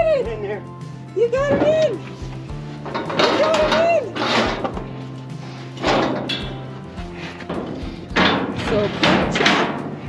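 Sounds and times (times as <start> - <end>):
background music: 0.0 - 10.0
metal gate clattering shut: 2.8 - 10.0.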